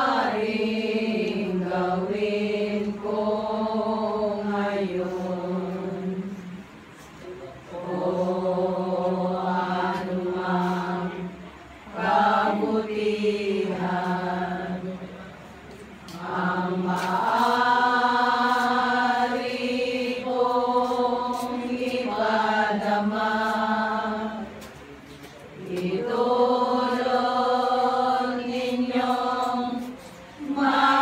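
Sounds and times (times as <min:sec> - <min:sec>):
women singing a hymn: 0:00.0 - 0:24.8, 0:25.5 - 0:31.0.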